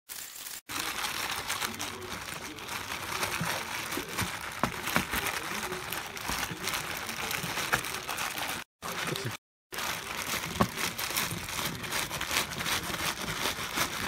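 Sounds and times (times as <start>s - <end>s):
plastic bags crinkling: 0.1s - 14.0s.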